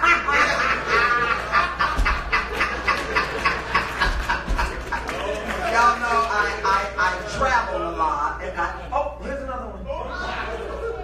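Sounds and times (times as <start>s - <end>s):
person laughing hard: 0.0s - 5.1s.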